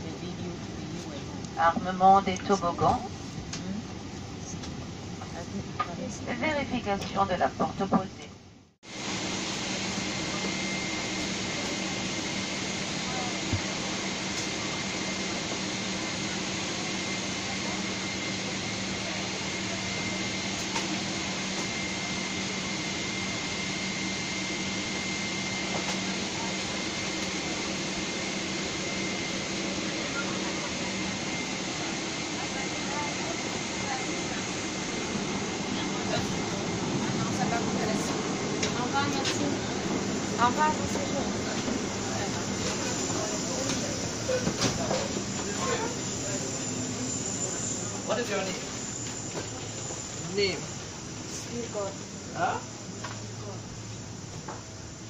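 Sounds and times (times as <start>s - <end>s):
airliner cabin noise: 0.0s - 55.0s
faint high whine: 0.0s - 55.0s.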